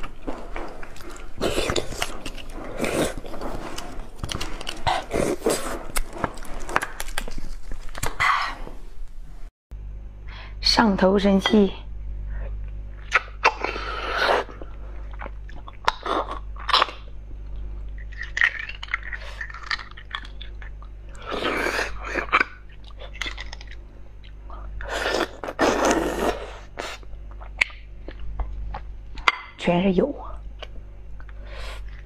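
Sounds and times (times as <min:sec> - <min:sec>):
noisy sucking of marrow: 0:00.0 - 0:08.7.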